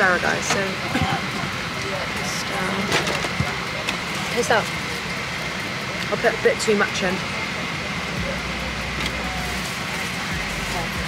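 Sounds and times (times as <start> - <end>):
airliner cabin engine rush: 0.0 - 11.0.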